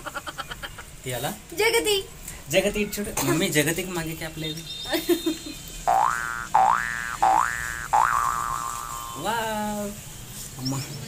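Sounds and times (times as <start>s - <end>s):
cartoon boing sound effect: 5.9s - 9.0s.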